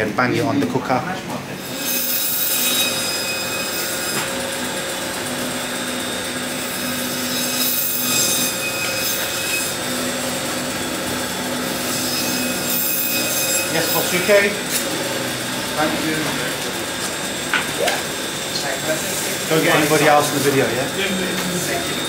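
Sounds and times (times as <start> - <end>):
electric machine humming: 0.0 - 22.0.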